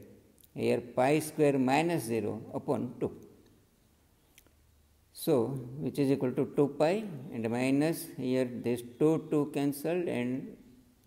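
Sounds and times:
man speaking: 0:00.0 - 0:03.4, 0:05.1 - 0:10.8.

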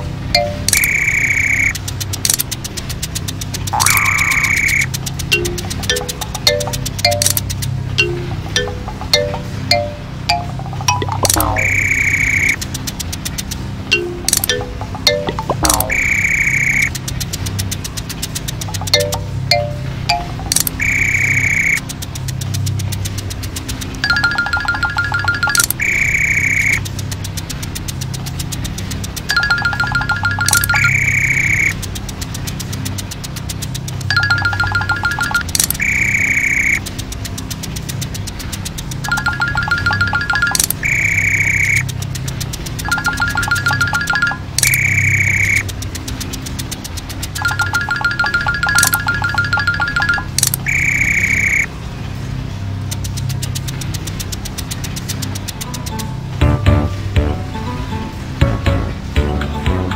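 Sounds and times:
steady low hum: 0:00.0 - 0:59.9
high electronic tones: 0:00.3 - 0:02.4, 0:03.7 - 0:12.6, 0:13.9 - 0:17.0, 0:18.6 - 0:21.9, 0:24.0 - 0:26.8, 0:29.3 - 0:31.8, 0:34.1 - 0:36.9, 0:39.0 - 0:41.9, 0:42.8 - 0:45.7, 0:47.4 - 0:51.7, 0:55.4 - 0:59.9
high held beep: 0:00.4 - 0:01.8, 0:03.8 - 0:07.4, 0:08.0 - 0:12.6, 0:14.0 - 0:16.9, 0:24.0 - 0:26.8, 0:29.3 - 0:31.8, 0:42.9 - 0:45.6, 0:47.4 - 0:51.7
sharp click: 0:00.4 - 0:09.4, 0:10.9 - 0:19.2, 0:20.1 - 0:24.0, 0:35.4 - 0:39.1, 0:40.5 - 0:42.8, 0:44.6 - 0:47.1, 0:50.3 - 0:51.7.

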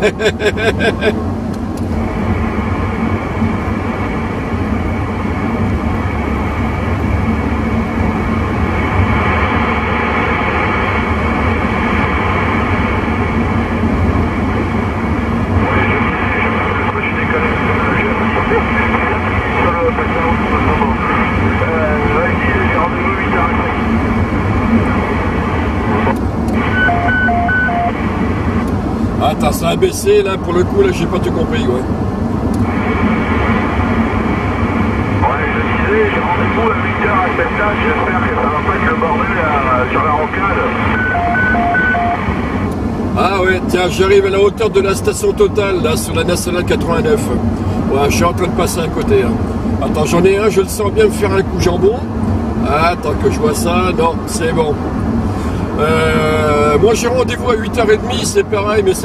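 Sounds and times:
road noise: 0:00.0 - 0:59.0
radio static hiss: 0:15.6 - 0:23.9, 0:25.8 - 0:28.0, 0:35.2 - 0:42.6
voice over radio: 0:15.6 - 0:23.9, 0:25.9 - 0:28.0, 0:35.2 - 0:42.3, 0:55.8 - 0:59.0
short radio beeps: 0:26.6 - 0:28.0, 0:40.7 - 0:42.3.

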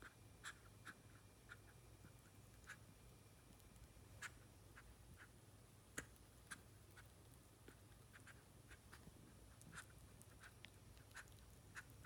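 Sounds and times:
squirrel licking wet clicks: 0:00.4 - 0:12.0.

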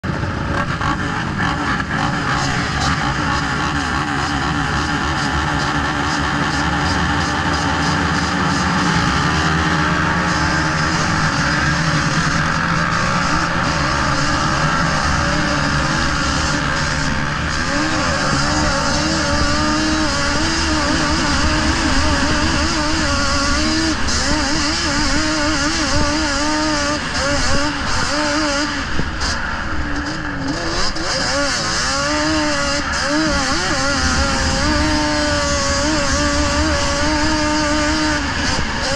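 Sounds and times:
quad engine revving: 0:00.0 - 0:38.9.

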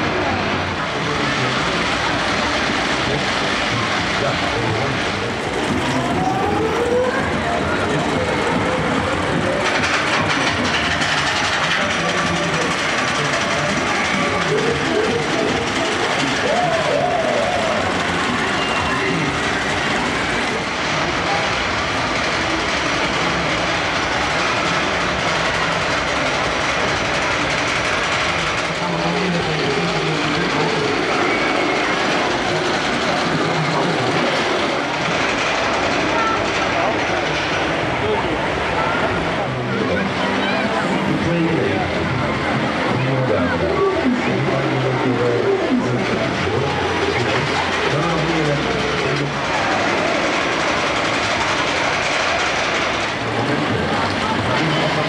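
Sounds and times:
crowd voices: 0:00.0 - 0:55.0
roller coaster rattling on rails: 0:00.0 - 0:55.0.

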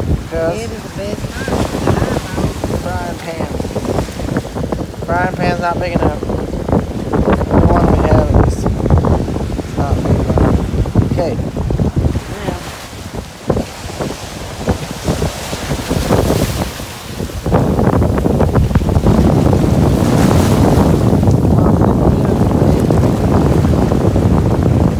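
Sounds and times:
ocean surf over rocks: 0:00.0 - 0:24.9
wind buffeting microphone: 0:00.0 - 0:24.9.

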